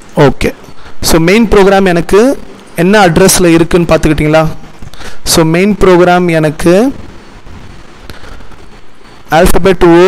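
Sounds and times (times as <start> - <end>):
microphone hiss and rumble: 0.0 - 10.0.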